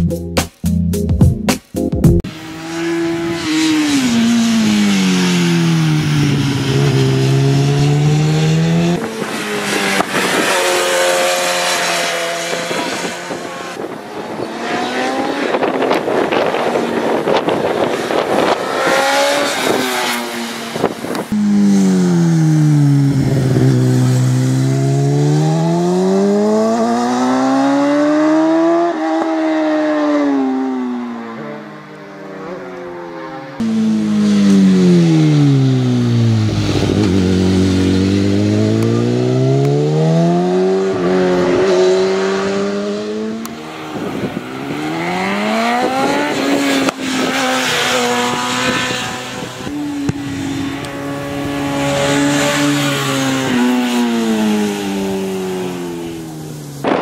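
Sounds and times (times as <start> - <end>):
racing motorbike engine: 2.2 - 57.0.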